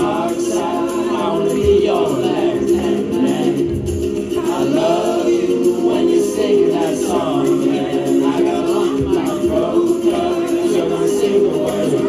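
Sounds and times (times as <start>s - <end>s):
karaoke backing music: 0.0s - 12.0s
people singing along: 0.0s - 12.0s.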